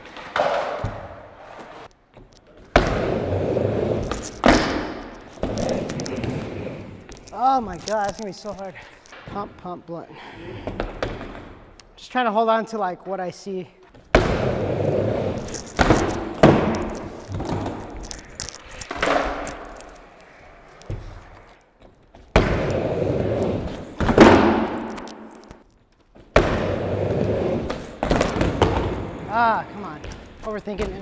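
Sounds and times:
skateboard rolling on wooden ramp: 2.7s - 7.2s, 14.0s - 18.2s, 22.1s - 25.6s, 26.2s - 29.6s.

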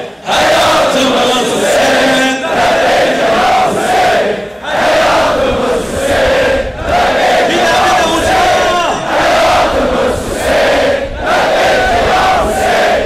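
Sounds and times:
crowd chanting in unison: 0.0s - 13.0s.

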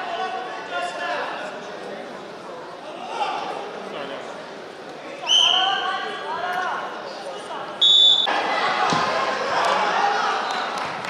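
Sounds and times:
spectators chattering and shouting: 0.0s - 11.0s
shrill whistle blast: 5.3s - 5.8s, 7.8s - 8.3s.

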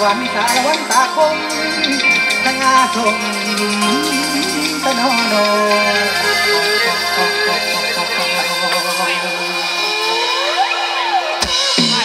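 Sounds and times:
bass: 0.0s - 12.0s
held electronic keyboard notes: 0.0s - 12.0s
live band music: 0.0s - 12.0s
rising pitch sweep: 1.4s - 12.0s.

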